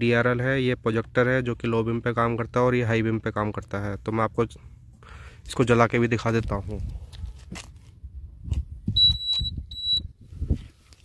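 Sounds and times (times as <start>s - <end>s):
high-pitched electronic beeps: 9.0s - 10.1s.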